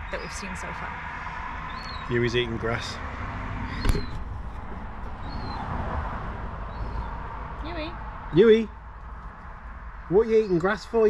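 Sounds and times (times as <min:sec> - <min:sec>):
steady low rumble: 0:00.0 - 0:10.4.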